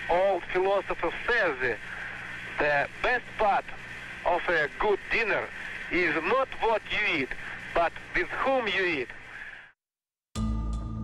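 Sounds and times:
person talking on old recording: 0.0 - 9.4.

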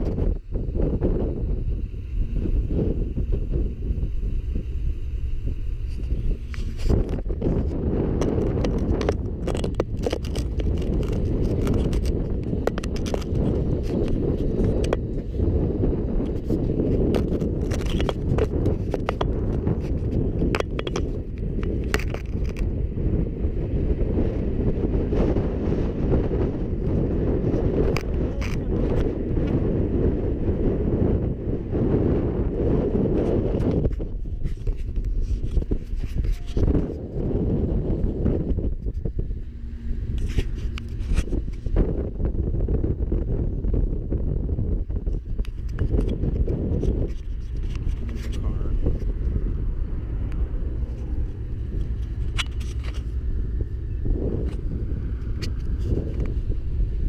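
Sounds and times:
wind buffeting microphone: 0.0 - 57.0
crunching and scraping clicks: 5.9 - 15.2, 16.2 - 22.7, 27.8 - 29.6, 33.1 - 37.3, 38.4 - 41.9, 45.0 - 49.4, 50.2 - 53.2.

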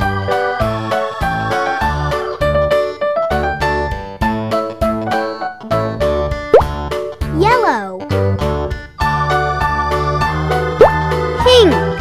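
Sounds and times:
instrumental children's music: 0.0 - 12.0
upward-sliding plop effect: 6.5 - 6.8, 10.8 - 11.0.

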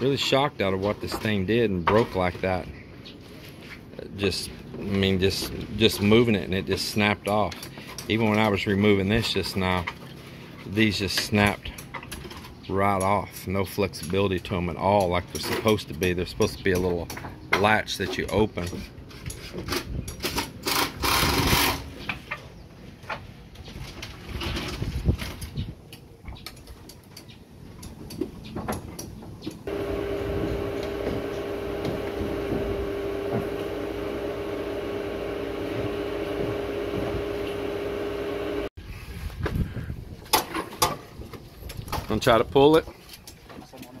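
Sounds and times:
inverter electrical hum: 29.6 - 38.7.

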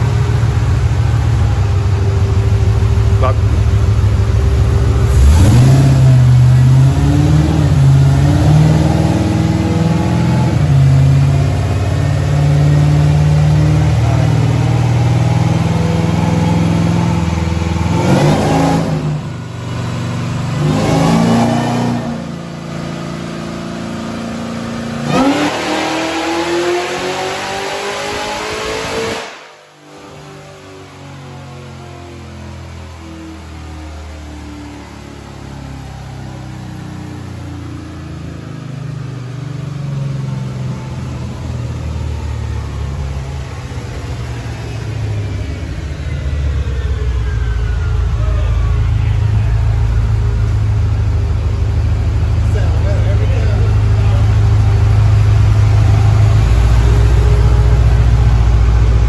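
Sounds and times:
supercharged truck engine revving: 0.0 - 59.0.

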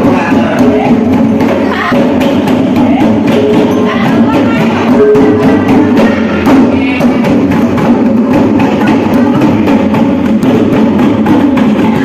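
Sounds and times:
fast hand drumming: 0.0 - 12.0.

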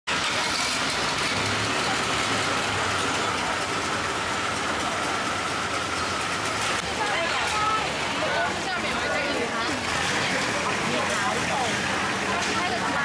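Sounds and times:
boat engine running: 0.1 - 13.0.

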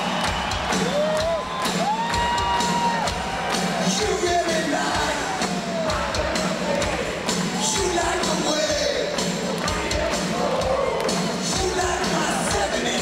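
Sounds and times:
crowd cheering and whooping: 0.0 - 8.3, 10.4 - 11.3.

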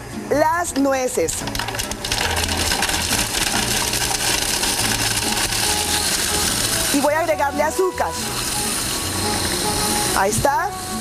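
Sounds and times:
background music: 0.0 - 11.0
food processor grinding: 1.4 - 11.0.

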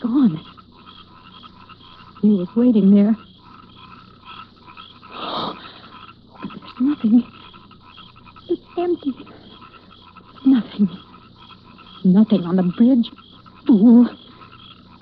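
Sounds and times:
small creatures chirping: 0.0 - 15.0
woman breathing fearfully: 5.1 - 6.0.

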